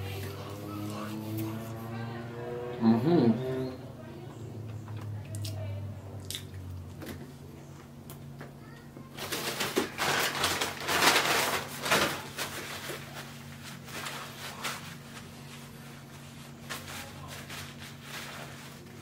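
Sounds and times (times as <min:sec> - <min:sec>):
steady low hum: 0:00.0 - 0:19.0
paper napkin rustling: 0:09.2 - 0:19.0.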